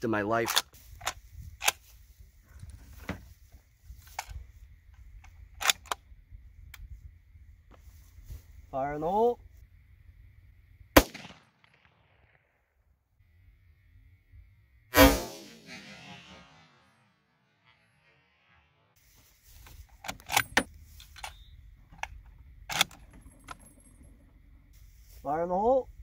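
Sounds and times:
rifle shots: 11.0 - 12.4, 14.9 - 18.6.

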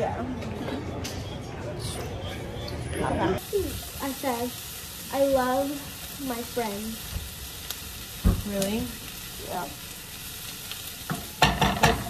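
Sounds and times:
food sizzling in a pan: 3.4 - 12.0.

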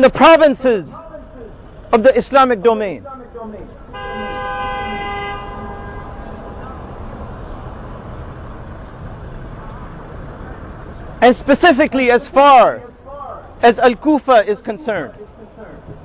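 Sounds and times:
two-pitched horn tone: 3.9 - 6.8.

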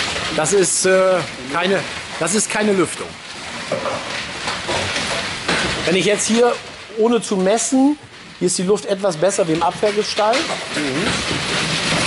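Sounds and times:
steady hissing background noise: 0.0 - 12.0.

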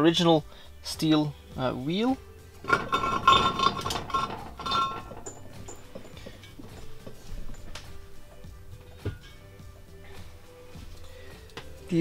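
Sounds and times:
steel wheel clinking on metal hub: 2.6 - 9.6.

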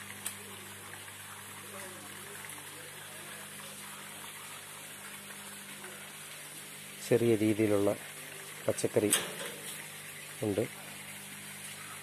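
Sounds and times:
running water hiss: 0.0 - 12.0.

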